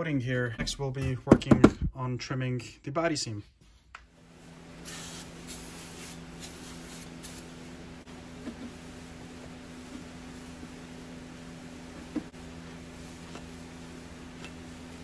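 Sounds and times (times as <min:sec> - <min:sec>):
aerosol spray hissing: 0:04.8 - 0:07.5.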